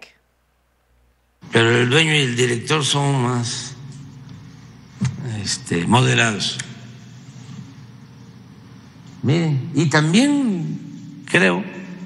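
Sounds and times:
low background hiss: 0.0 - 12.0.

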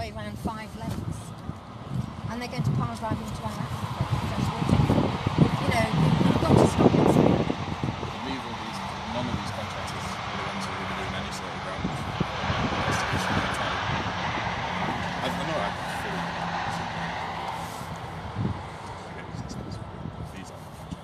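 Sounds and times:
distant engine drone: 0.0 - 21.0
indistinct voices: 0.0 - 21.0.

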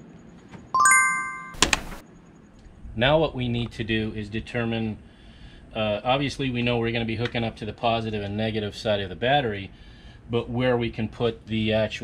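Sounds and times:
bright rising chime: 0.8 - 1.6.

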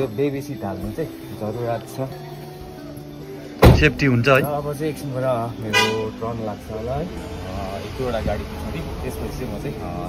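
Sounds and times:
vehicle horn toot: 5.7 - 6.2.

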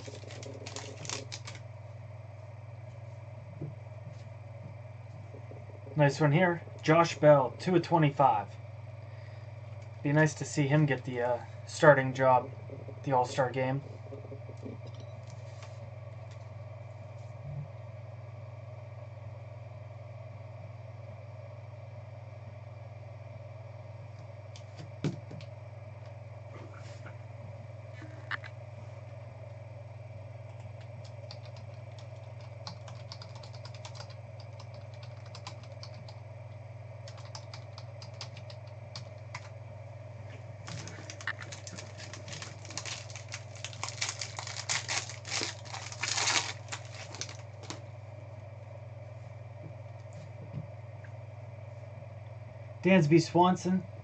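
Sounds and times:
foil wrappers crackling: 0.0 - 1.7, 40.6 - 47.8
electrical hum: 0.0 - 54.0.

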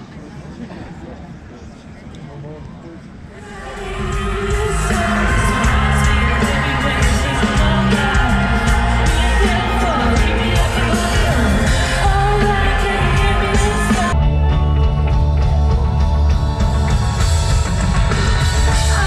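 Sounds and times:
live pop music with singing: 3.4 - 19.0
heavy bass beat: 3.6 - 19.0.

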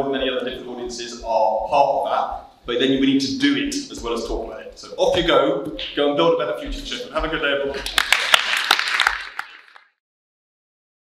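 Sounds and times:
applause with hand claps: 7.8 - 10.0.

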